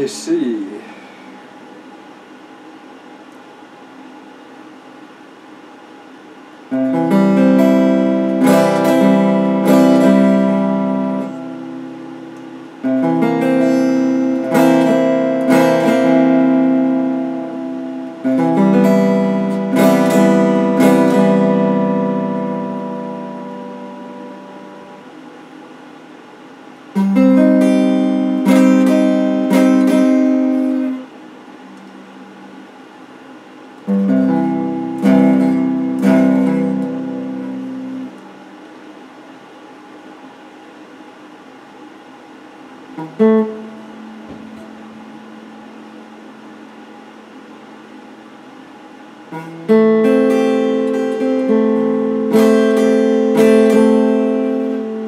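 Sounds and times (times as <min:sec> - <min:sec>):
electric guitar strumming chords: 0:06.6 - 0:25.5, 0:26.9 - 0:38.6, 0:42.9 - 0:55.0
plucked guitar note: 0:06.7 - 0:25.1, 0:27.0 - 0:32.6, 0:33.9 - 0:38.2, 0:43.0 - 0:46.2, 0:49.3 - 0:55.0.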